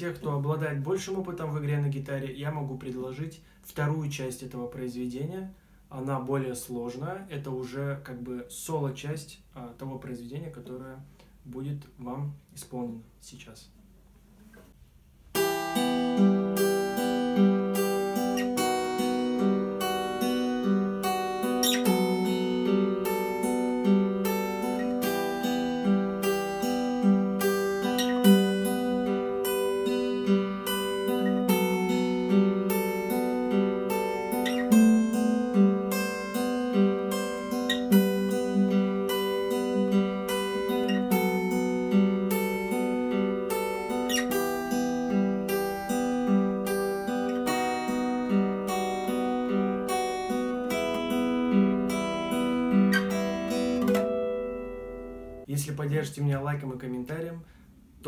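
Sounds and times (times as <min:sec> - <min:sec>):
fingerpicked acoustic guitar: 0:15.3 - 0:56.0.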